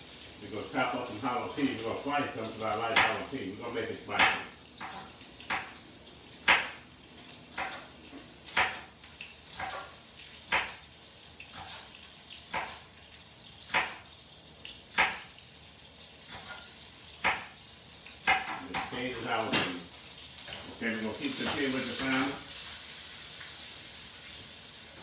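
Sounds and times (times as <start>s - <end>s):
fish sizzling in oil: 0.0s - 25.0s
knife chopping on wooden board: 4.2s - 5.7s, 6.4s - 6.8s, 7.5s - 7.9s, 8.5s - 8.9s, 9.5s - 9.9s, 10.5s - 10.8s, 12.5s - 12.8s, 13.7s - 14.0s, 14.9s - 15.3s, 17.2s - 17.6s, 18.2s - 18.9s.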